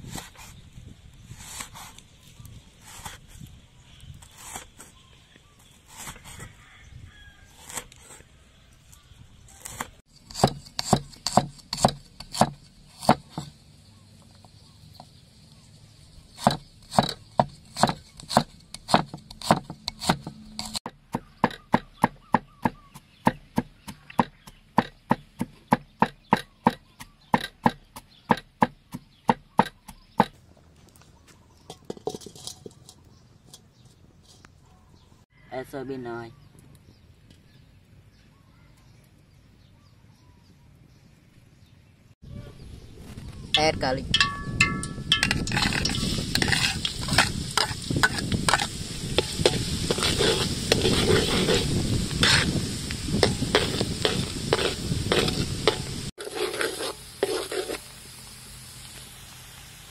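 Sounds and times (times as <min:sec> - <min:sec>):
knife chopping on wooden board: 0:09.6 - 0:13.5, 0:16.4 - 0:30.3
metal spatula scraping wok: 0:31.6 - 0:34.5, 0:44.2 - 0:58.0
food sizzling in oil: 0:44.2 - 0:59.9.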